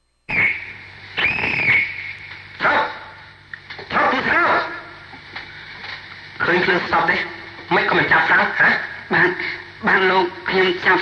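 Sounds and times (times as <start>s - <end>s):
low recording hum: 0.0s - 11.0s.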